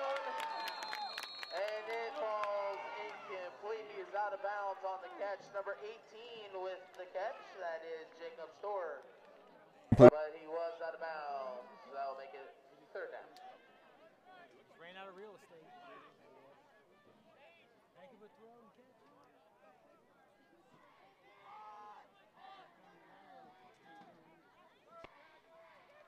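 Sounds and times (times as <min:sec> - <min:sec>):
murmur of spectators chatting: 0:01.6 - 0:26.0.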